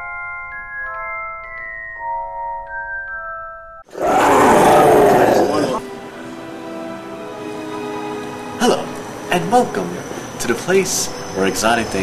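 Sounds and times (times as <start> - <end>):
chiming glockenspiel-like notes: 0.0 - 3.8
loud rough roar: 3.9 - 5.8.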